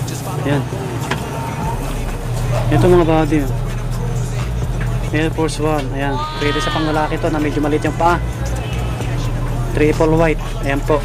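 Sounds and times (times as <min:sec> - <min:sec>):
man speaking: 0:00.0 - 0:03.6, 0:05.1 - 0:11.0
busy street traffic: 0:00.0 - 0:11.0.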